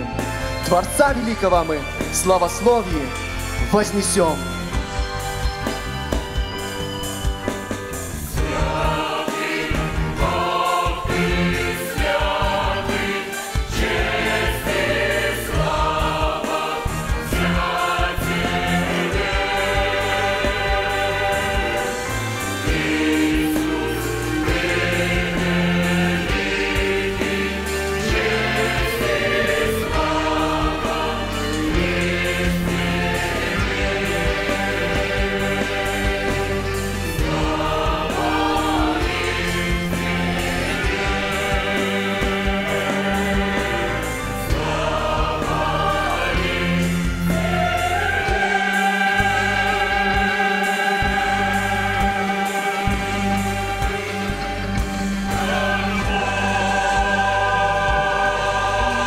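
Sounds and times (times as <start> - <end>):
church orchestra playing: 0.0 - 59.0
mixed choir singing: 2.3 - 59.0.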